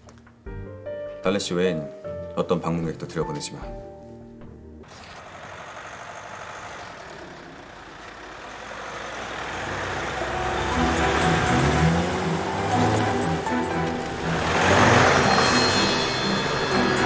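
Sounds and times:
background music: 0:00.0 - 0:04.9, 0:09.6 - 0:17.0
motor vehicle approaching: 0:04.8 - 0:17.0.

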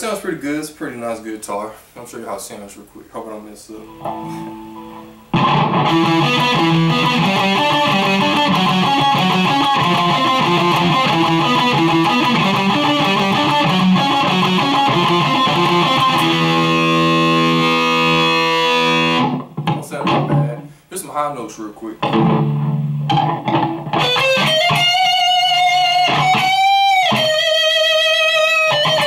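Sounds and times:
electric guitar playing: 0:03.8 - 0:20.8, 0:22.0 - 0:29.0.

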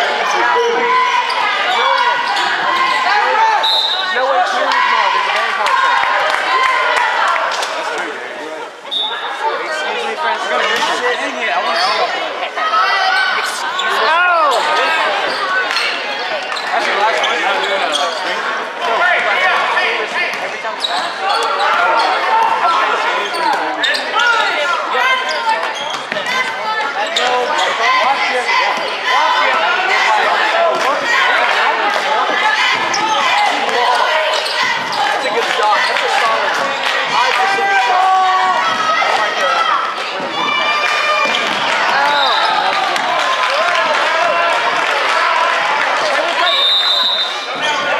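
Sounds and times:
crowd chatter: 0:00.0 - 0:47.9.

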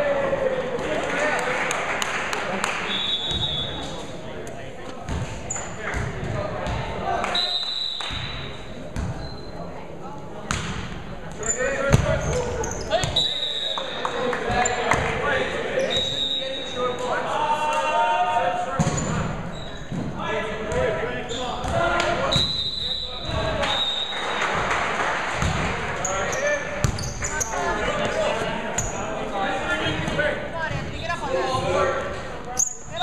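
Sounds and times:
sneakers squeaking on court: 0:08.1 - 0:09.6, 0:11.4 - 0:15.1, 0:18.8 - 0:20.0, 0:26.0 - 0:29.0
players calling: 0:11.4 - 0:33.0.

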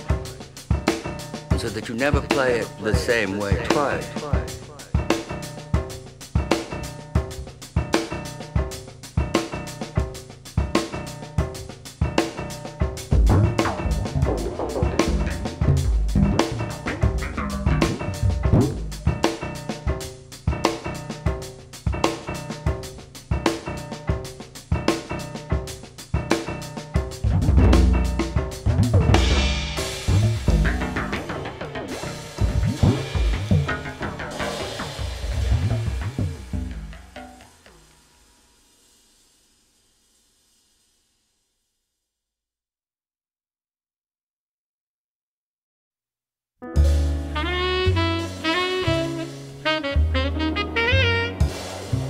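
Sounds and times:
drum kit playing: 0:00.0 - 0:39.4, 0:46.8 - 0:52.0
jazz piano: 0:03.4 - 0:37.4, 0:46.6 - 0:52.0.

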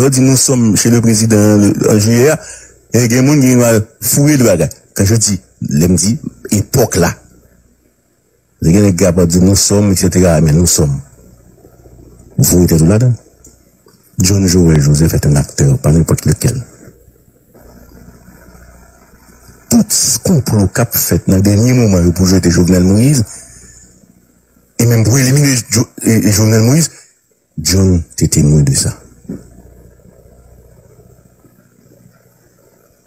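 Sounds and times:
faint low hum: 0:00.0 - 0:33.0.

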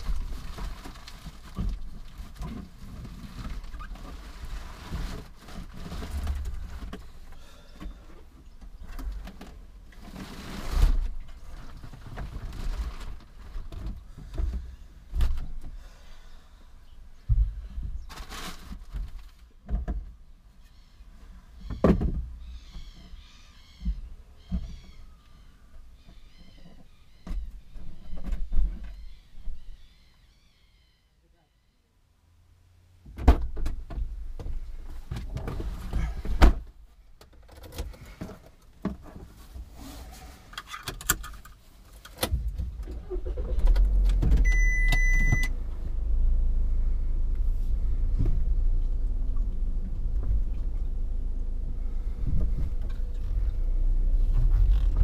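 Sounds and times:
bird chirping: 0:20.6 - 0:31.9.

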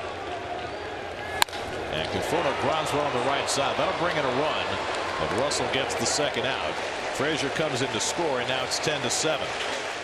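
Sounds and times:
crowd murmuring: 0:01.1 - 0:10.0
bat cracking on ball: 0:01.3 - 0:02.2.

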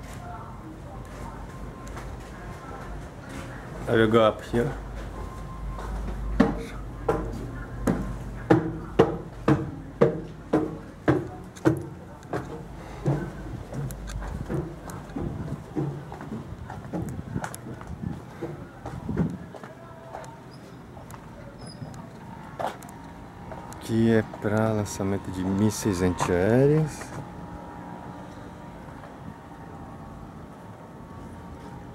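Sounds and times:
footsteps on steel stairs: 0:05.8 - 0:20.2.

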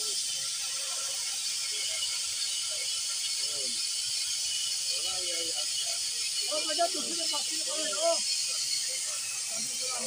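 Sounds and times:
cutting torch hissing: 0:00.0 - 0:10.0.

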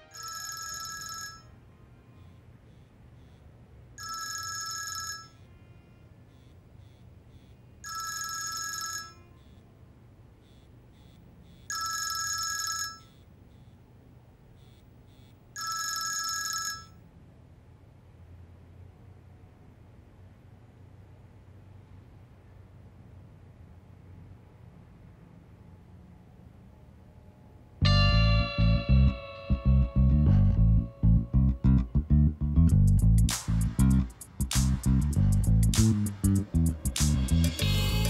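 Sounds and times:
phone ringtone ringing: 0:00.0 - 0:03.4, 0:04.0 - 0:05.6, 0:07.3 - 0:09.6, 0:10.5 - 0:13.2, 0:15.2 - 0:17.0, 0:27.8 - 0:31.4.

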